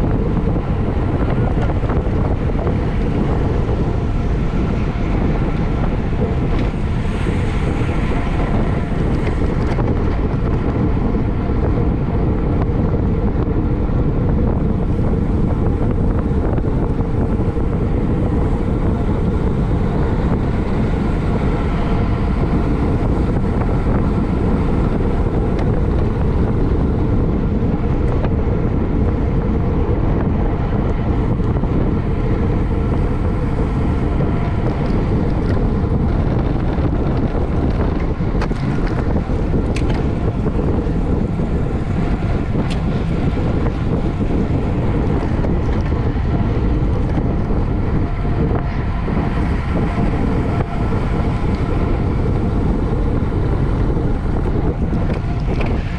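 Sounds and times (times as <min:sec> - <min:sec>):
road and tyre noise: 0:00.0 - 0:55.9
wind rushing on microphone: 0:00.0 - 0:55.9.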